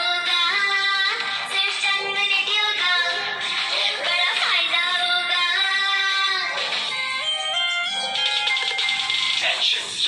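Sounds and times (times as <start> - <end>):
electronic melody: 6.9 - 9.5
light beat: 7.6 - 9.5.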